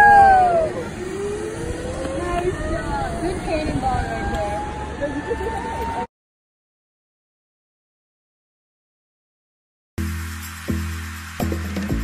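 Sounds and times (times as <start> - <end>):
wind noise: 0.0 - 6.1
zipline trolley whirring on cable: 0.0 - 6.1.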